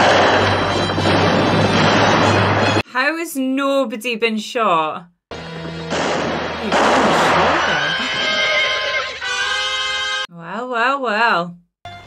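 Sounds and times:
echoing gunshots: 0.0 - 2.8, 5.9 - 7.8
background music: 0.0 - 2.9, 5.3 - 10.3.

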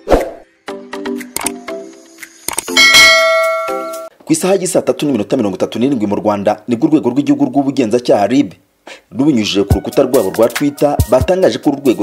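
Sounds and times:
bright chime-like chord hit: 2.7 - 4.1.

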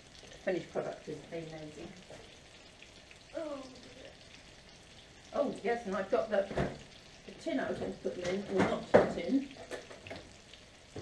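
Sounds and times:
frying pan sizzling: 0.0 - 11.0
woman saying oh: 3.3 - 4.1.

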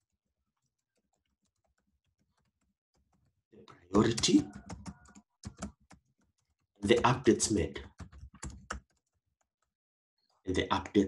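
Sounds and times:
keyboard typing: 0.0 - 3.4, 4.0 - 10.4
man talking: 3.6 - 4.6, 6.8 - 7.9, 10.5 - 11.0.

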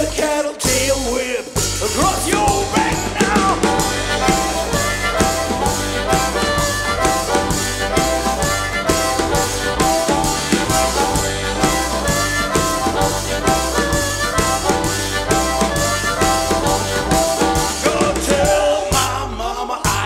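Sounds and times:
double bass: 0.7 - 20.0
drum beat: 1.6 - 19.2
harmonica bending notes: 1.6 - 19.4.

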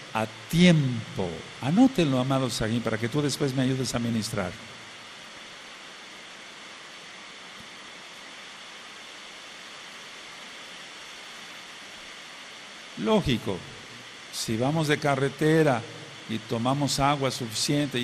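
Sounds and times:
room tone hiss: 0.0 - 18.0.

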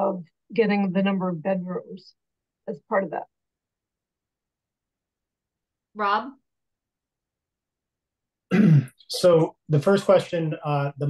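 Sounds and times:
man clearing his throat: 8.5 - 9.4.

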